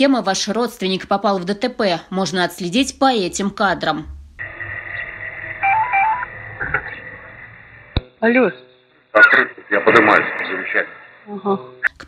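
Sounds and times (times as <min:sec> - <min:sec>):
thin electronic whine: 0:04.1 - 0:08.0
electronic ringtone melody: 0:05.6 - 0:06.3.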